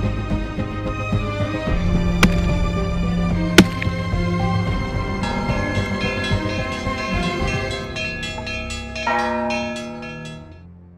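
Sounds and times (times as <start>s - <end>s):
small church bells pealing: 4.5s - 10.7s
heavy bell strike: 5.2s - 10.6s.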